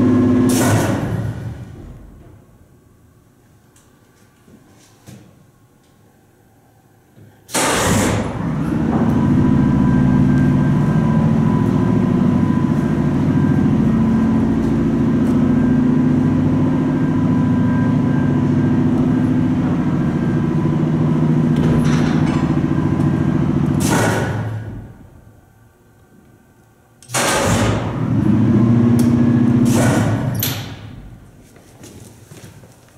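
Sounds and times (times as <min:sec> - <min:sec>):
elevator hoist machine running: 0:05.7 - 0:31.4.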